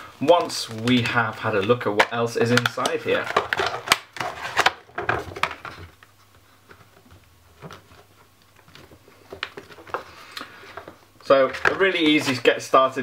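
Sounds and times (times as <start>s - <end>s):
paper rustling: 0.0s - 13.0s
plastic case clicks: 2.0s - 5.7s.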